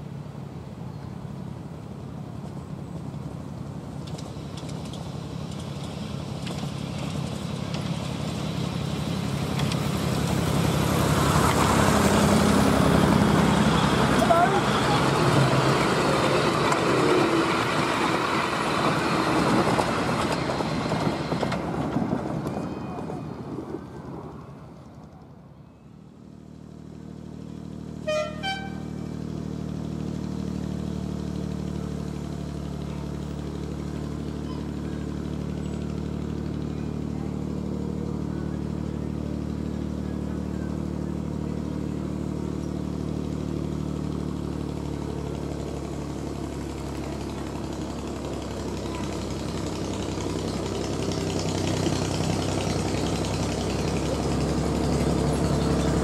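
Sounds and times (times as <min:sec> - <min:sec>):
miniature locomotive engine running: 0:03.9 - 0:23.2, 0:30.2 - 0:56.0
locomotive horn blasts: 0:28.0 - 0:29.1.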